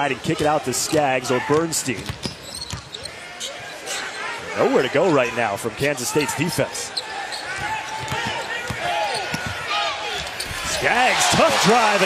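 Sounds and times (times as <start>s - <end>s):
arena crowd noise: 0.0s - 12.0s
sneakers squeaking: 0.8s - 4.5s, 6.9s - 10.8s.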